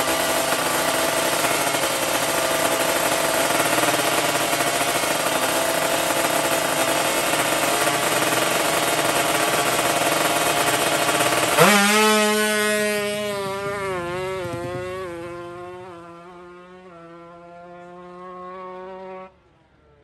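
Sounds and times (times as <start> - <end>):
motorcycle engine at high revs: 0.0 - 19.4.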